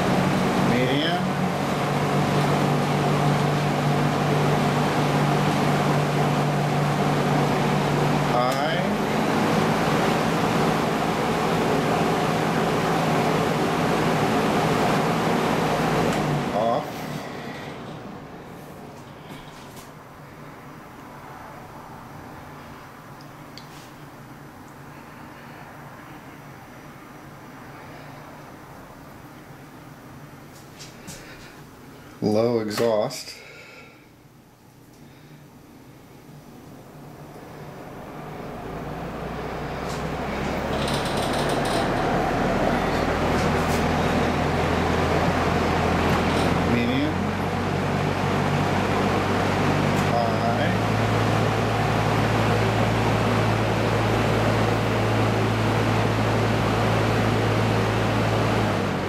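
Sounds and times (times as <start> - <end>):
box fan running: 0.0 - 59.0
fan grill rattle: 39.0 - 46.9.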